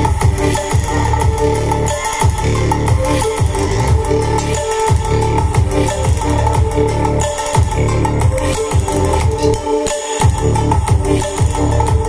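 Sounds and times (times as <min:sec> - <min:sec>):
bass-heavy electronic dance music: 0:00.0 - 0:12.0.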